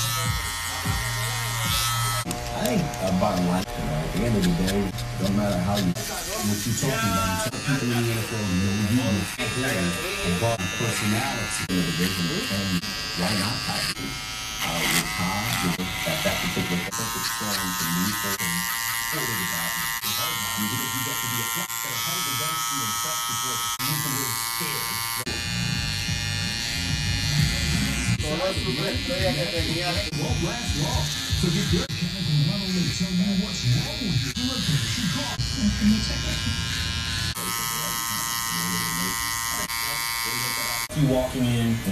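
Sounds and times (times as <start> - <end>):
electric hair clippers buzzing: 0.0 - 41.9.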